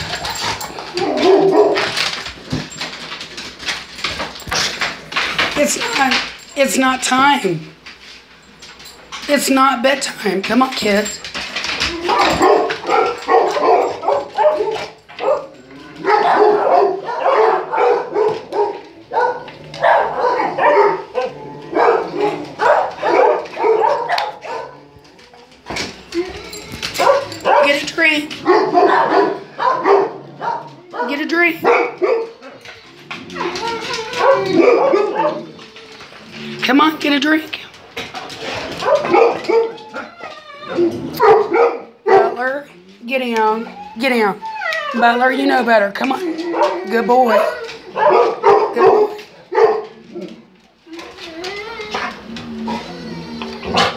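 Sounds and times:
dog barking: 1.0s - 2.0s, 12.1s - 24.8s, 27.0s - 27.8s, 28.4s - 32.5s, 34.2s - 35.5s, 38.8s - 39.8s, 41.1s - 42.5s, 46.5s - 50.0s.

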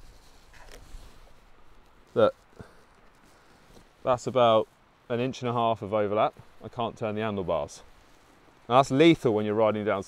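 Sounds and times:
faint brief rustle: 0.0s - 4.0s.

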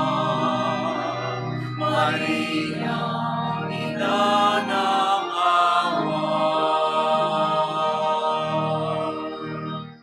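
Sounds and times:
choir singing a slow hymn: 0.0s - 9.8s.

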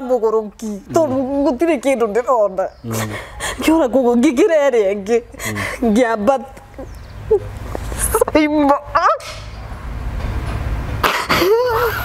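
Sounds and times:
woman sobbing: 5.2s - 6.0s, 11.1s - 12.0s.

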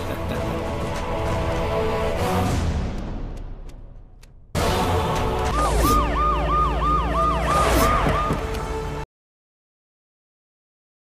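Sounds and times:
police siren yelping: 5.5s - 8.6s.

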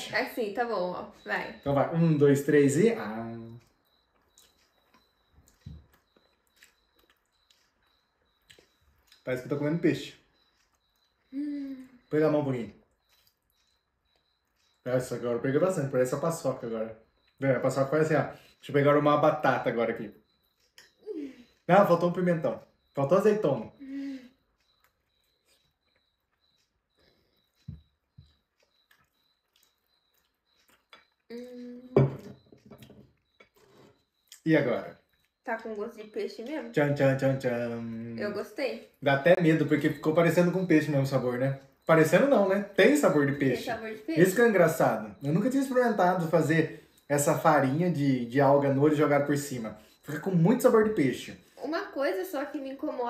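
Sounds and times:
people chewing food: 0.0s - 51.6s
person humming mmm: 11.3s - 12.0s, 31.3s - 32.1s.

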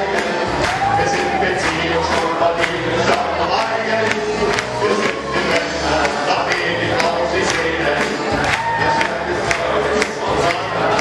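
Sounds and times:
live stage music: 0.0s - 11.0s
audience cheering: 0.1s - 2.4s, 8.3s - 9.4s.

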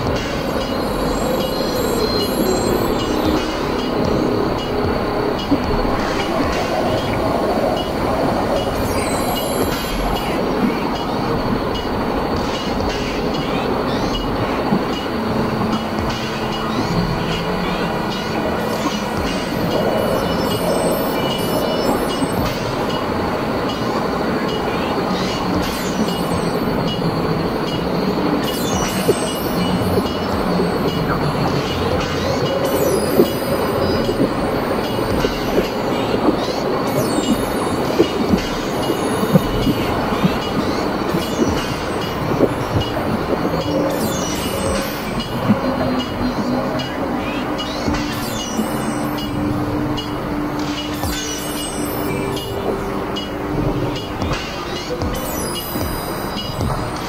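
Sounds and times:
noise drone: 0.0s - 57.0s.

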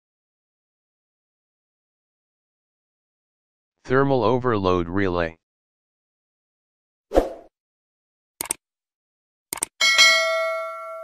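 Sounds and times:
quick clicks: 8.4s - 8.6s, 9.5s - 9.8s
notification bell ding: 9.8s - 11.0s.

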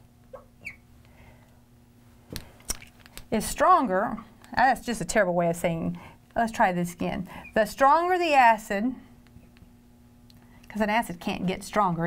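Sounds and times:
faint steady hum: 0.0s - 12.0s
marker squeaking on glass: 0.4s - 0.8s.

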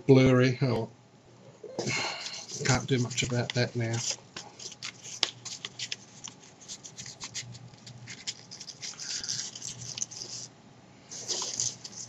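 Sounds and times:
paper rustling and crinkling: 2.2s - 10.5s, 11.1s - 12.0s.

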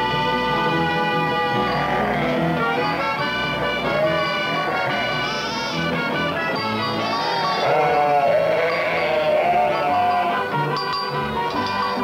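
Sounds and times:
background music: 0.0s - 12.0s
sheep bleating: 1.2s - 2.6s, 3.5s - 5.9s, 6.9s - 10.5s.

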